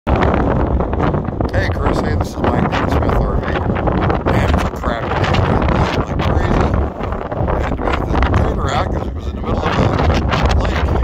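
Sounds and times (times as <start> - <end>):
wind buffeting microphone: 0.1 - 11.0.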